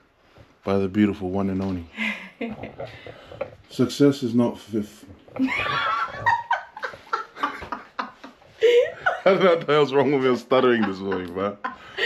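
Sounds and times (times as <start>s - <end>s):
man and woman laughing: 5.4s - 12.0s.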